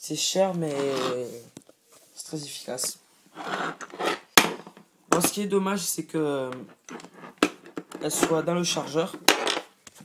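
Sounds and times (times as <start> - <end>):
handling rubbing and rustling: 0.5 - 5.4, 6.5 - 10.0.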